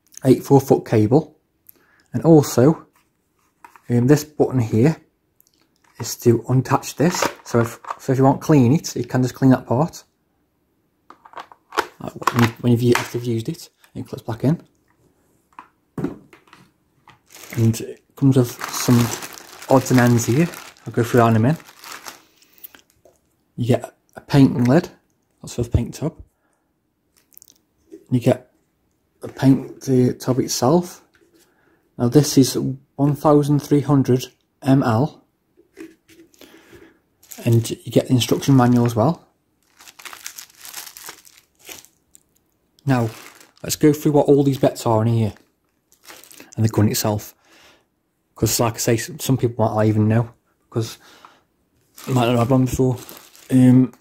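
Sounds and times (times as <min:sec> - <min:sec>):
plastic spray gun handling: 0:03.6 - 0:04.0, 0:07.1 - 0:08.1, 0:11.1 - 0:13.2, 0:15.6 - 0:17.8
plastic bag crinkling: 0:17.1 - 0:23.2, 0:37.2 - 0:39.0, 0:39.6 - 0:46.6, 0:51.8 - 0:54.0.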